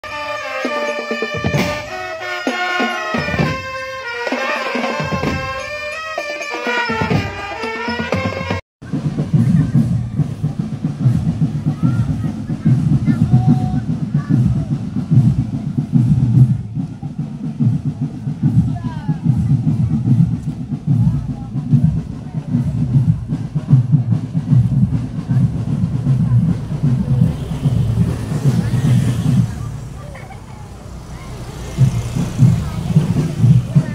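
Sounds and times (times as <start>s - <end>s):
marching band drums: 0.0s - 33.9s
voices of marchers: 0.0s - 33.9s.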